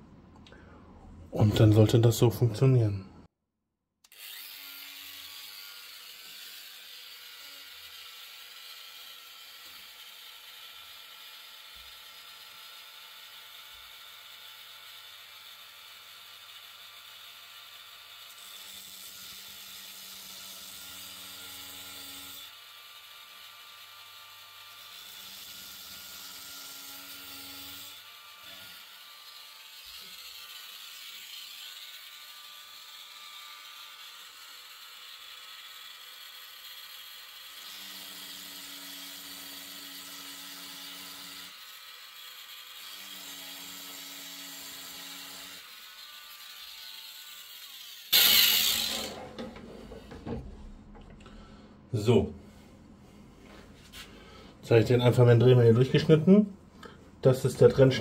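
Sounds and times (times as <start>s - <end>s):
rotary tool whining: 4.1s - 13.7s, 14.9s - 51.3s.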